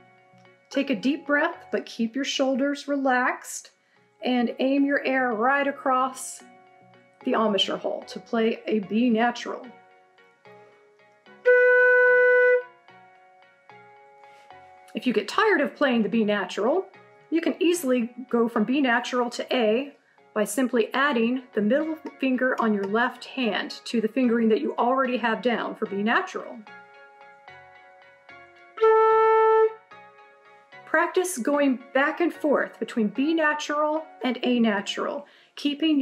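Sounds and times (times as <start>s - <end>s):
faint background music: 0.0s - 36.0s
flute held note: 11.4s - 12.7s.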